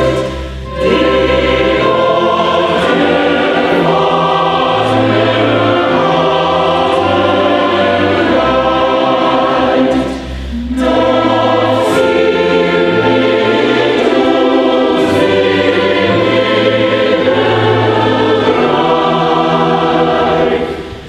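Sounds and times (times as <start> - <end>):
choir singing sustained chords: 0.0 - 21.0
orchestra with violins: 0.0 - 21.0.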